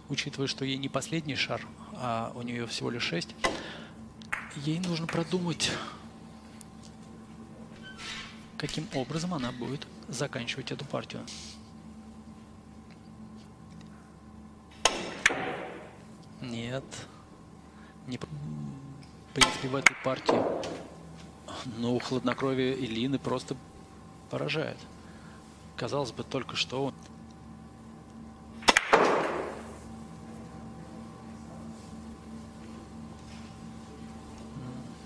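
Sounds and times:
billiard balls clicking: 0:04.2 - 0:05.4, 0:28.6 - 0:29.7
cue tip striking ball: 0:04.3 - 0:05.2, 0:14.8 - 0:16.0, 0:28.6 - 0:29.8.

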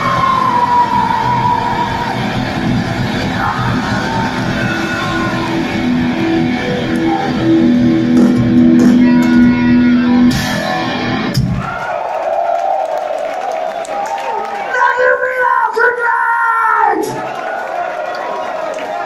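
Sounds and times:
heavy metal band playing live: 0:00.0 - 0:11.7.

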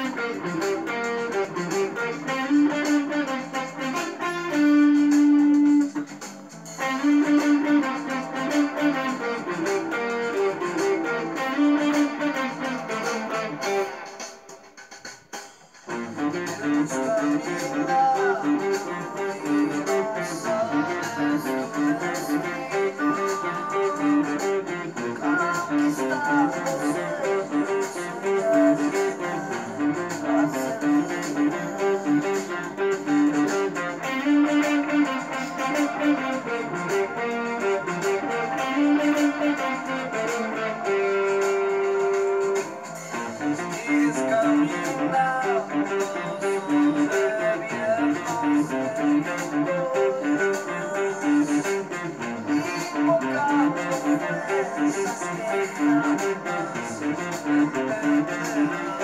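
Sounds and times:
electric guitar riff: 0:00.0 - 0:59.0.

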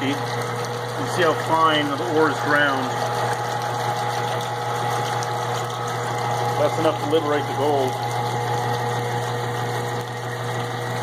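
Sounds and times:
low mechanical hum: 0:00.0 - 0:11.0
water washing: 0:00.0 - 0:11.0.

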